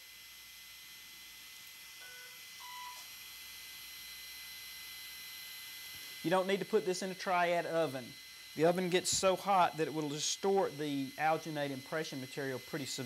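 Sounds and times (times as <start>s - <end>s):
short electronic beeps: 2.0s - 3.1s.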